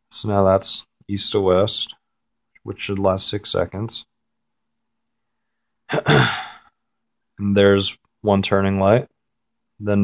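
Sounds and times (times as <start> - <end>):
man clearing his throat: 5.9 - 6.6.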